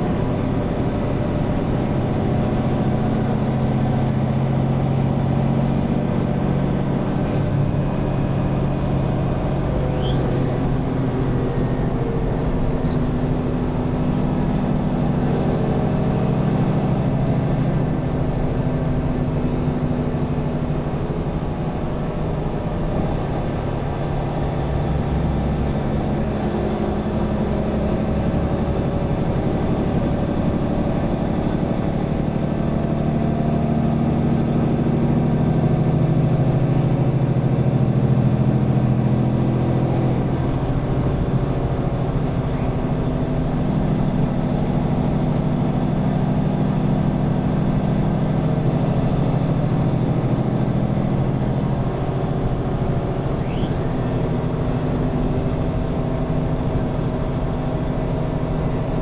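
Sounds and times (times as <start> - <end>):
bus diesel engine from inside: 0.0 - 59.0.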